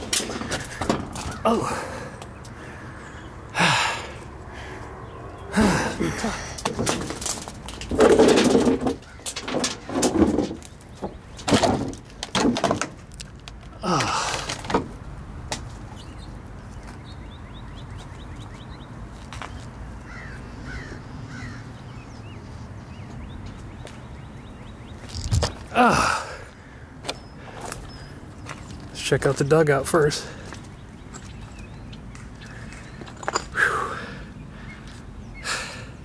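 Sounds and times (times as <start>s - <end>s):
quiet outdoor background: 0.0s - 36.0s
rustling and knocking from handling: 6.6s - 15.6s.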